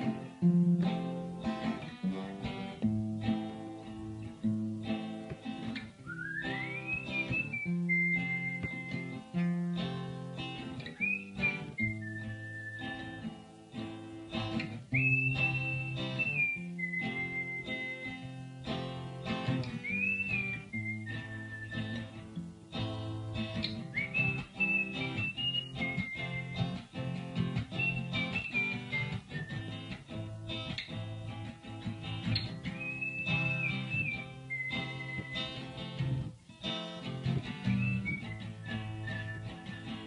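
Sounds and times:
acoustic guitar chords: 0.0s - 40.0s
person whistling: 6.0s - 9.3s, 10.8s - 13.3s, 14.9s - 18.3s, 19.7s - 22.3s, 23.6s - 26.9s, 27.6s - 30.0s, 32.7s - 35.9s, 37.6s - 40.0s.

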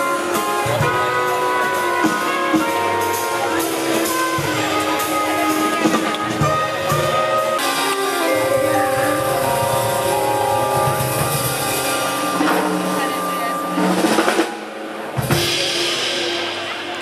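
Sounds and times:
live band playing: 0.0s - 17.0s.

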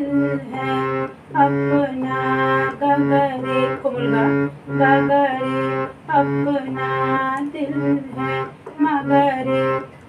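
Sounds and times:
harmonium melody: 0.0s - 10.0s.

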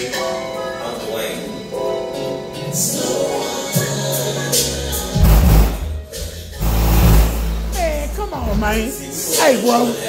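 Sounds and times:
song through car subwoofers: 0.1s - 10.0s
deep bass notes: 5.0s - 9.0s.

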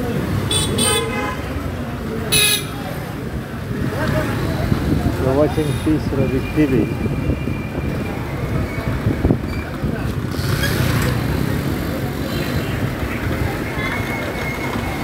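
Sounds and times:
traffic noise: 0.0s - 15.0s.

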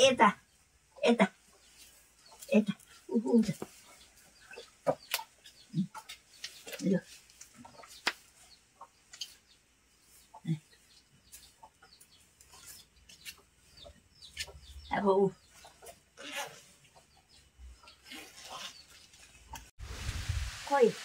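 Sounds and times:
chickens clucking: 0.5s - 19.7s.

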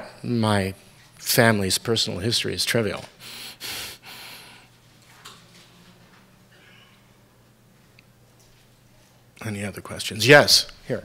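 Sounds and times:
faint room noise: 0.0s - 11.0s
breaths close to microphone: 3.2s - 4.7s.

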